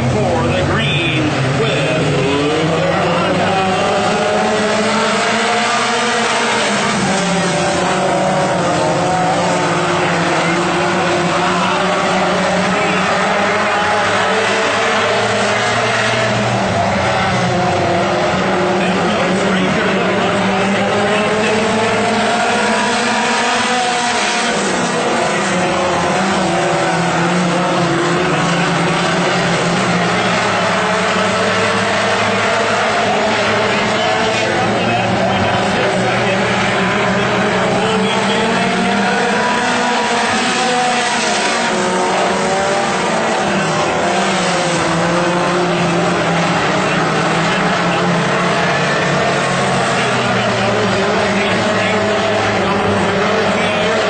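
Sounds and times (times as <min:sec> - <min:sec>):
race car engines passing: 0:00.0 - 0:54.0.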